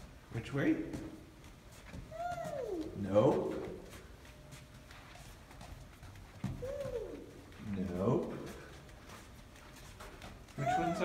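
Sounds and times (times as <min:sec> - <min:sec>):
toddler humming: 0:02.1 - 0:03.0, 0:06.5 - 0:07.5, 0:10.6 - 0:11.0.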